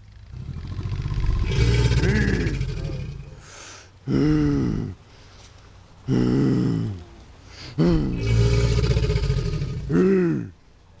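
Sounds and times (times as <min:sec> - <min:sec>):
man grunting: 0:09.9 - 0:10.5.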